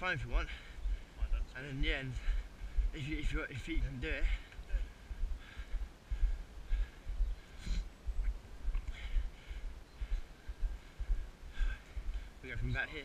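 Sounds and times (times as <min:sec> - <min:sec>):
wind buffeting microphone: 0:00.0 - 0:13.0
faint breathy sounds: 0:00.3 - 0:13.0.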